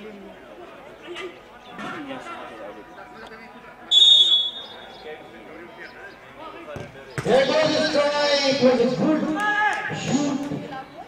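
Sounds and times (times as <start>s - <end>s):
low chatter: 0.0s - 11.0s
referee's whistle blast: 3.9s - 4.9s.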